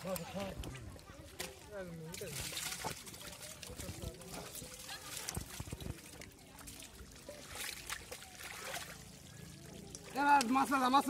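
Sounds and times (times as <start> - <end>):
muddy water trickling and dripping: 0.0 - 11.0
soft splashes in wet mud: 0.0 - 11.0.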